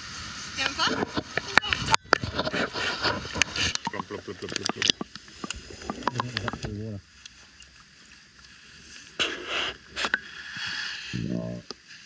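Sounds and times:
muffled water sloshing: 0.4s - 9.2s
muffled voice: 11.2s - 11.6s.

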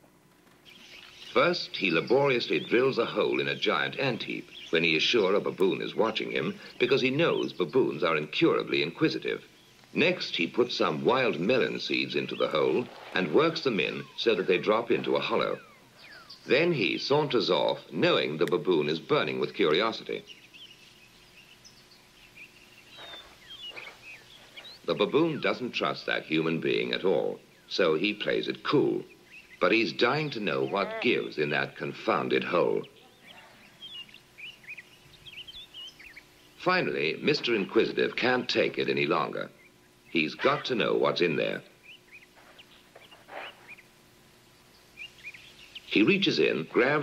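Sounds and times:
birdsong over loudspeakers: 0.0s - 47.0s
low steady hum: 0.0s - 47.0s.

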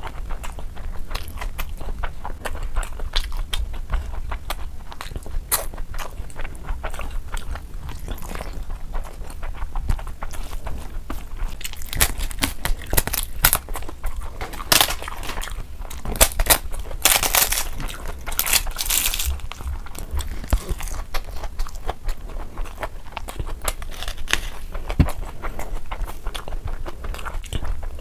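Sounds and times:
chewing and mouth clicks: 0.0s - 28.0s.

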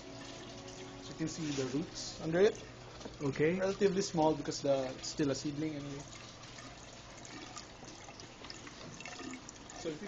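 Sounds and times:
water trickling in tank: 0.0s - 10.0s.

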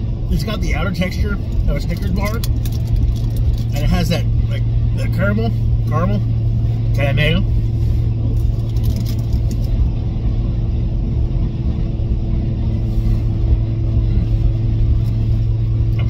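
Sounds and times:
car engine idling: 0.0s - 16.0s.

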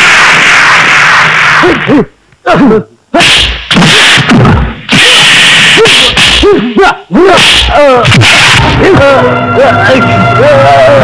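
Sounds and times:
punches landing: 3.4s - 6.4s
men grunting and shouting: 5.7s - 9.3s.

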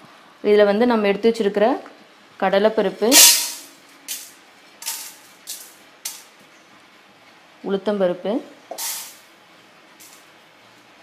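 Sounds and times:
grains rattling into steel pan: 3.1s - 6.2s, 8.8s - 9.2s.

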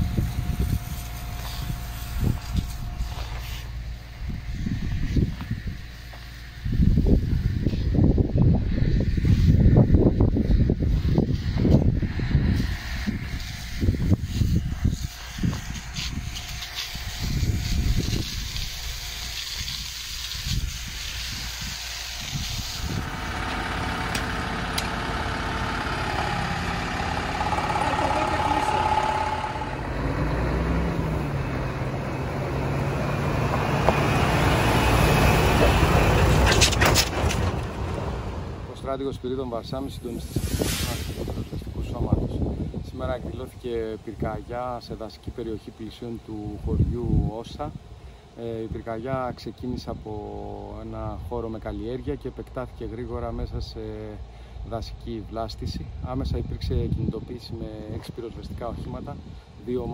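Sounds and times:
wind buffeting microphone: 0.0s - 44.5s
fire engine running with low hum: 0.0s - 59.9s.

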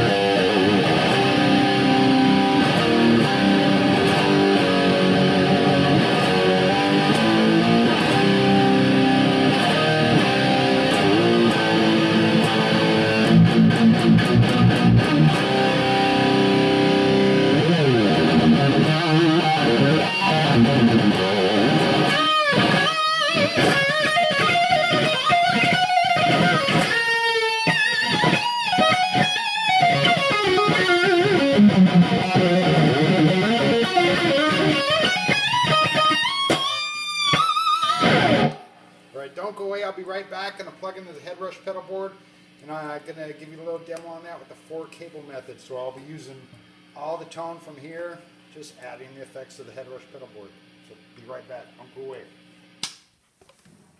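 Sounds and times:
distorted electric guitar: 0.0s - 38.8s.

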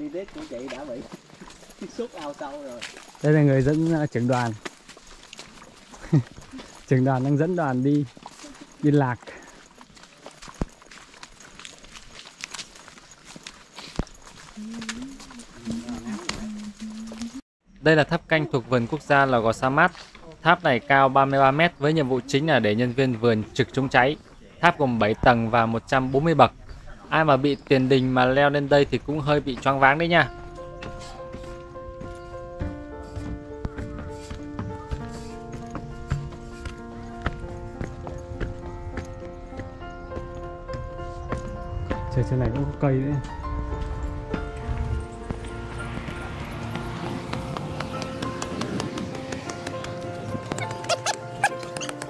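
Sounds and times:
footsteps on dirt and leaves: 0.0s - 17.4s, 18.7s - 24.4s, 26.0s - 52.0s
instrumental music with held notes: 29.3s - 52.0s.

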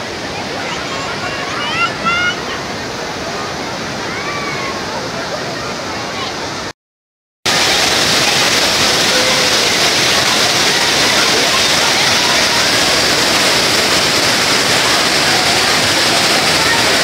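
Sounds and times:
water rushing over weir: 0.0s - 6.7s, 7.5s - 17.0s.

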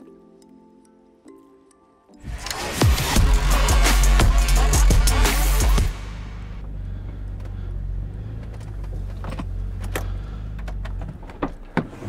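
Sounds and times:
car engine running low: 4.2s - 12.0s.

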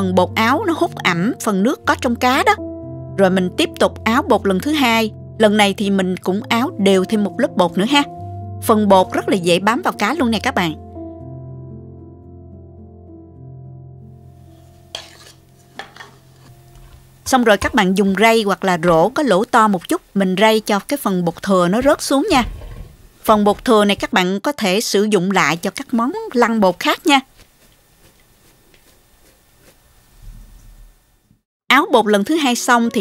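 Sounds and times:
rustling of floured fish: 26.8s - 30.8s.

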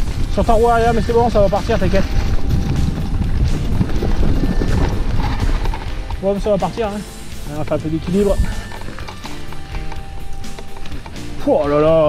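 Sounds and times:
bike clicking and rattling: 0.0s - 12.0s
tyres and wind rumbling: 0.0s - 12.0s.

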